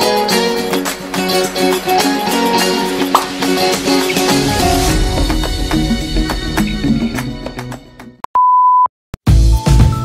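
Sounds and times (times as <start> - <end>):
background music with a beat: 0.0 - 8.2, 9.2 - 10.0.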